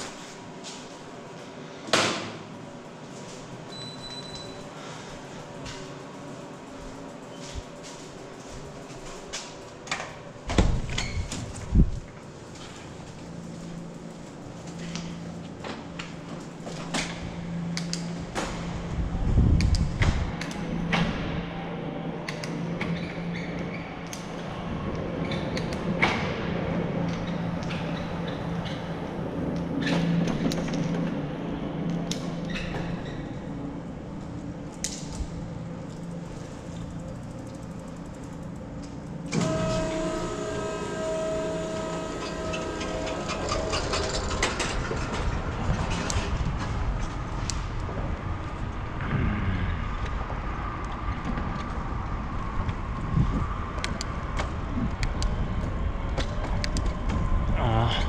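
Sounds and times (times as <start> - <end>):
bicycle rolling on concrete: 0.0 - 1.8, 2.5 - 57.9
garage door opening rumble and hum: 0.0 - 58.0
traffic noise: 11.4 - 58.0.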